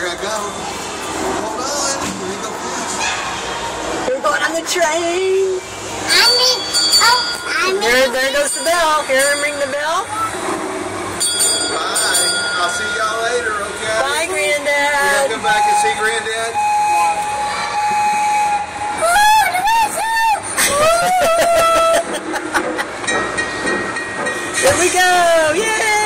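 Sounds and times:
bell ringing: 6.1 - 10.1, 11.1 - 14.0, 23.0 - 25.9
train whistle tones: 15.0 - 19.7.

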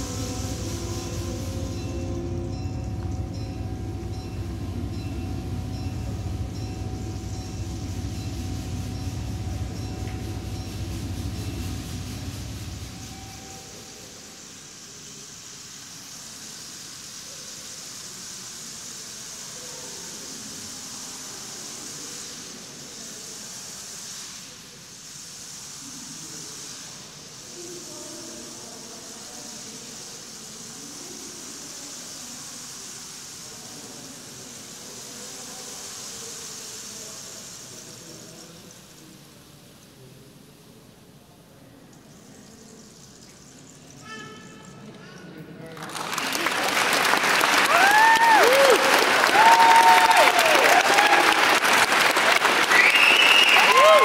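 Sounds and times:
ensemble low sustained chord: 0.0 - 14.7
faint scattered tones: 0.0 - 45.7
steady hissing texture: 0.0 - 54.0.

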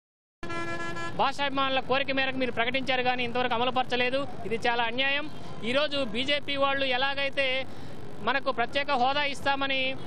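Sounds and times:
man talking loudly: 1.1 - 10.0.

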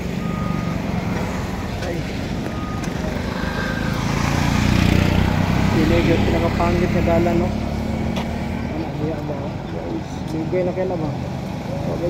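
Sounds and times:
road traffic engines: 0.0 - 12.0
truck engine rumble: 0.0 - 12.0.

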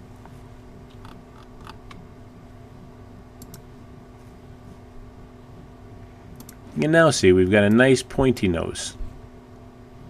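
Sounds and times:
low steady room hum: 0.0 - 10.0
computer mouse clicks: 3.4 - 3.7, 6.4 - 6.6.

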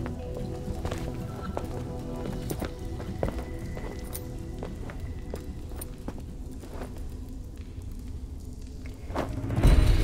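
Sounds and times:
background music: 0.0 - 10.0
footsteps on hard floor: 0.8 - 6.9.

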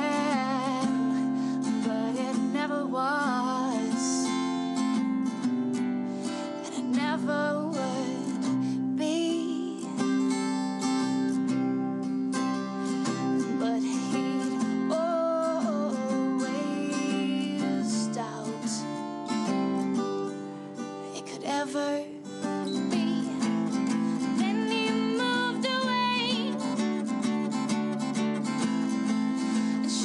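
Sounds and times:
strummed acoustic guitar: 0.0 - 30.0
woman singing folk song: 0.0 - 30.0.

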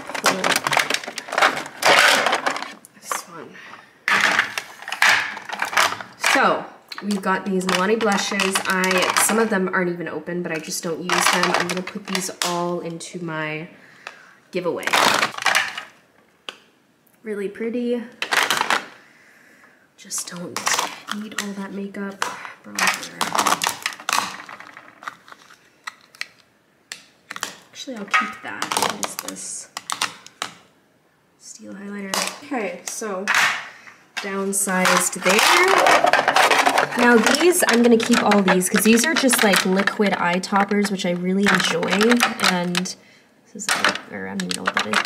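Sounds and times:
plastic compacts clattering in tray: 0.0 - 3.2, 4.1 - 6.4, 7.0 - 9.6, 10.5 - 12.6, 14.8 - 16.0, 18.2 - 19.0, 20.3 - 30.6, 32.1 - 43.0, 43.7 - 45.0.

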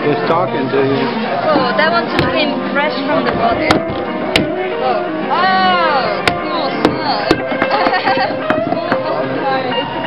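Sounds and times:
people talking: 0.0 - 3.9, 4.8 - 9.9
metal club whacking fish on wood: 3.7 - 4.6.

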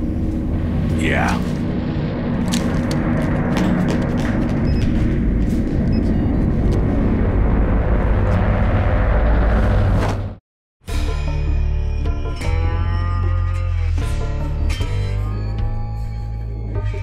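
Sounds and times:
loud low rumble: 0.0 - 10.4.

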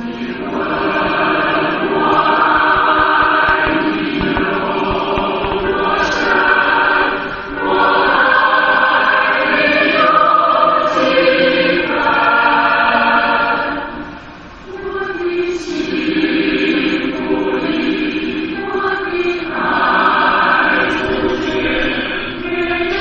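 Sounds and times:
choir singing with accompaniment: 0.0 - 23.0.

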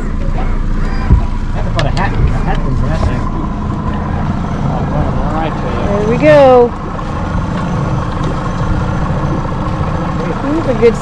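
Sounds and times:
outboard motor running: 0.0 - 11.0.

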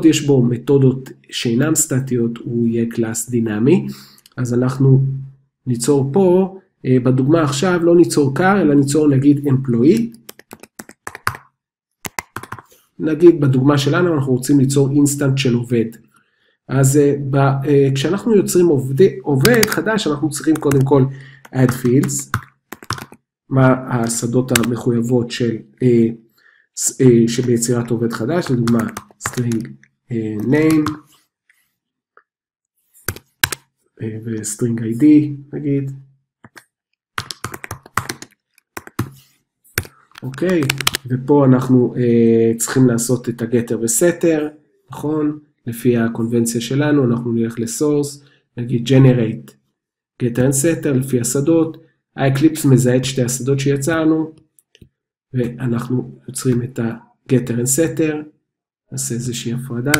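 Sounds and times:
computer keyboard typing: 9.9 - 11.5, 12.1 - 12.7, 19.4 - 19.8, 20.4 - 23.2, 24.0 - 24.8, 28.4 - 29.8, 30.4 - 31.0, 33.0 - 33.6, 37.2 - 41.1
keyboard key clicks: 33.1 - 33.6, 39.8 - 41.0.

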